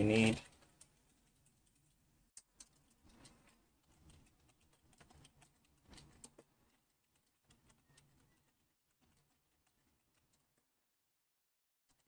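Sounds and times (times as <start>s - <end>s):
typing on computer keyboard: 0.2s - 10.7s.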